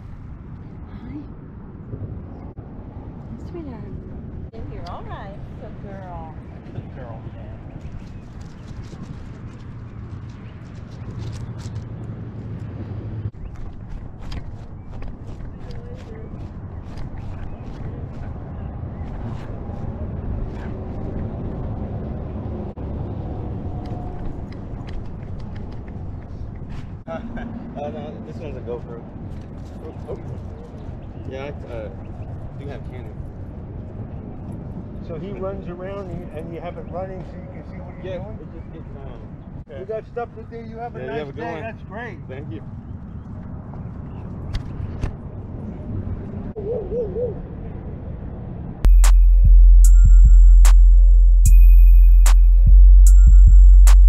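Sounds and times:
wind and handling rumble: 0:00.0 - 0:49.0.

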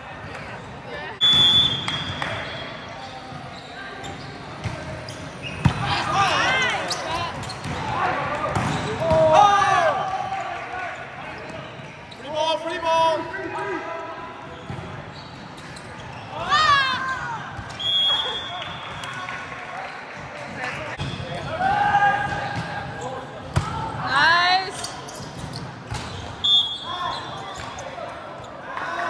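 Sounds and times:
players shouting: 0:05.5 - 0:11.1.

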